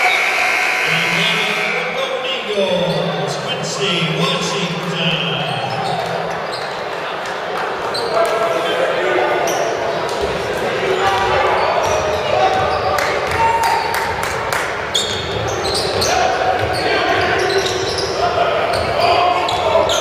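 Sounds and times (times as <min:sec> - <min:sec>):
indistinct voices echoing in gym: 0:00.0 - 0:20.0.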